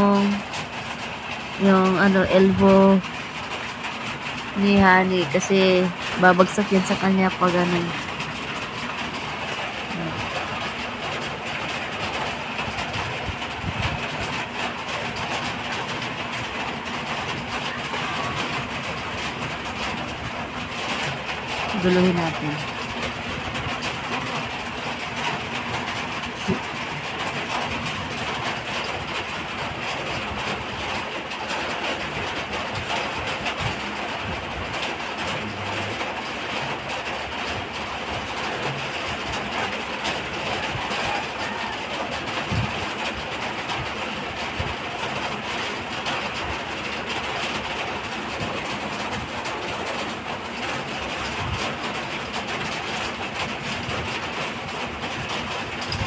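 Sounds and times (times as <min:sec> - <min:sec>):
steady rain falling: 0:00.0 - 0:56.0.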